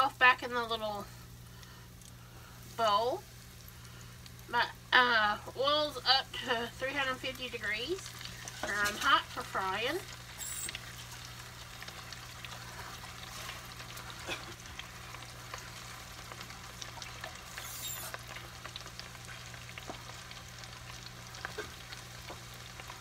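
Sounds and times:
onion rings deep-frying in oil: 0.0s - 23.0s.

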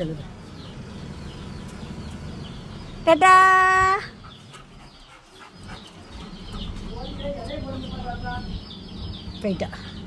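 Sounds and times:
faint bird chirps and clucks: 0.0s - 10.0s.

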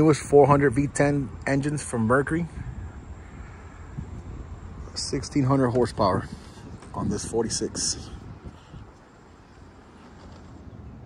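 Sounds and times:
person speaking: 4.9s - 8.3s.

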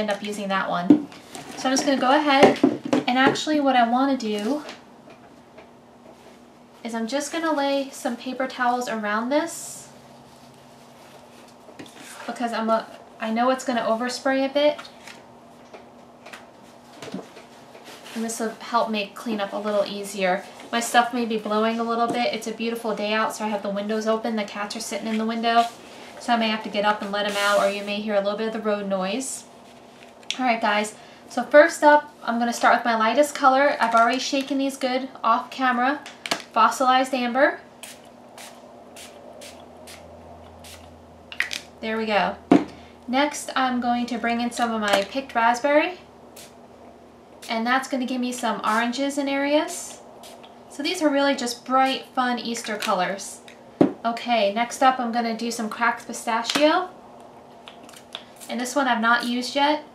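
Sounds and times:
faint steady hum: 0.0s - 59.9s.

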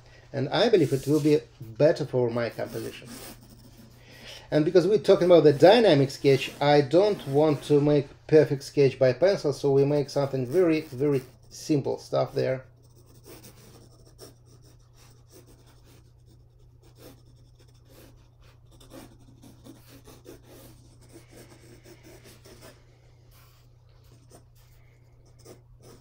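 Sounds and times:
low electrical hum: 0.0s - 26.0s
pencil scratching on paper: 0.6s - 8.1s, 9.7s - 26.0s.

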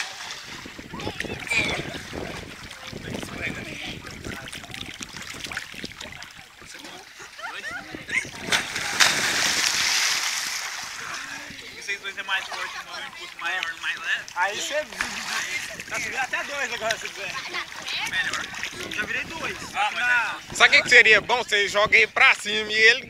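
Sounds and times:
people splashing in water: 0.0s - 20.6s
big splash into water: 8.2s - 11.1s.

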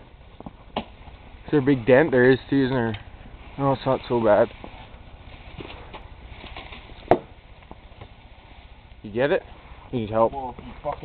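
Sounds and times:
sharp knock: 7.1s - 7.3s.

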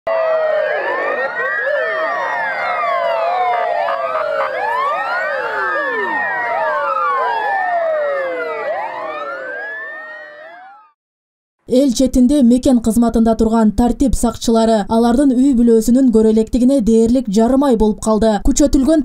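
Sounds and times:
police sirens wailing: 0.1s - 11.0s.

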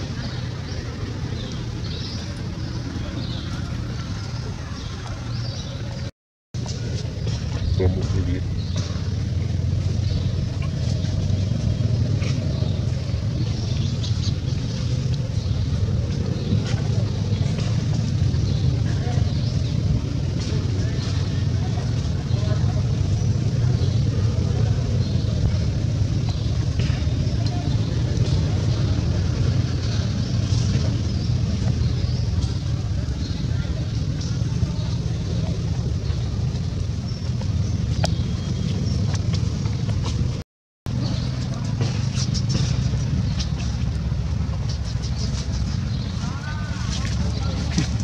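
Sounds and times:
low outdoor rumble: 0.0s - 48.0s.

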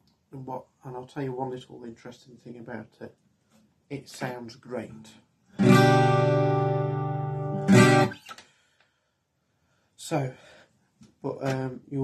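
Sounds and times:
strummed guitar chord: 5.6s - 8.2s.

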